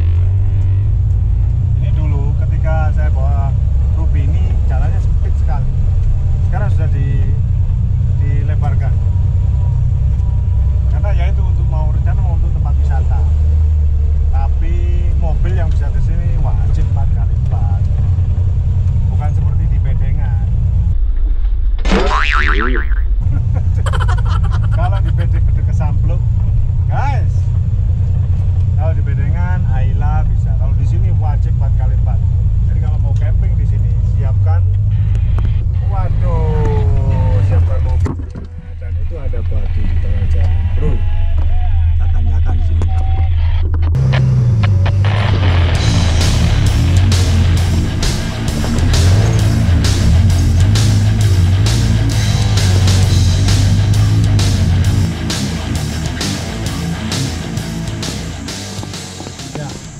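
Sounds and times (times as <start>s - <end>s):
vehicle engine low rumble: 0.0s - 59.9s
springy boing sound: 21.9s - 23.2s.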